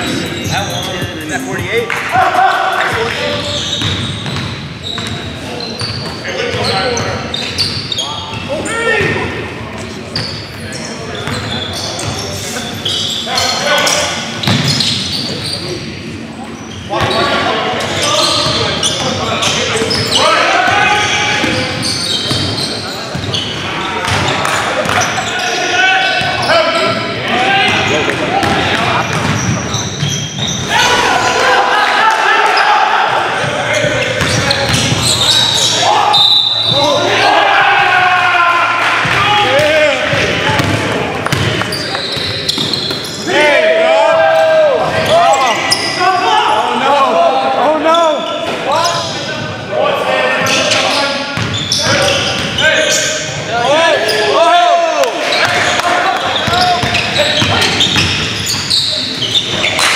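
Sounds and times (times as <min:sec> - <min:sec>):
shouting and chatter: 0:00.0 - 0:59.9.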